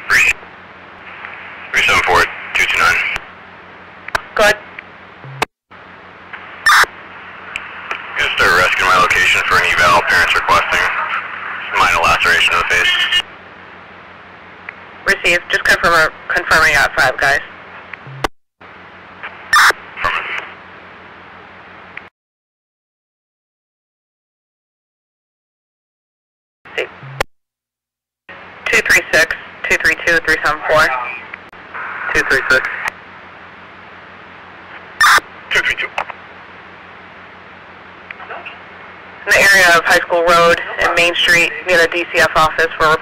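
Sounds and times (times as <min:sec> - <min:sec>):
voice over radio: 0:00.0 - 0:00.4, 0:01.7 - 0:03.3, 0:04.4 - 0:04.6, 0:08.0 - 0:13.3, 0:20.0 - 0:20.6, 0:28.7 - 0:31.3, 0:32.0 - 0:32.9, 0:35.1 - 0:36.1, 0:39.2 - 0:43.0
low hum: 0:00.0 - 0:16.4, 0:17.0 - 0:22.1, 0:26.8 - 0:27.3
radio static hiss: 0:00.0 - 0:22.1, 0:26.7 - 0:27.2, 0:28.3 - 0:43.0
radio click: 0:04.0 - 0:05.4, 0:07.5 - 0:08.1, 0:32.5 - 0:33.0, 0:35.8 - 0:36.2.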